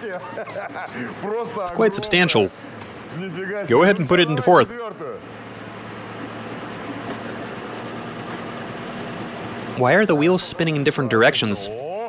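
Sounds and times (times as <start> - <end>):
car engine idling low hum: 0.0 - 11.7.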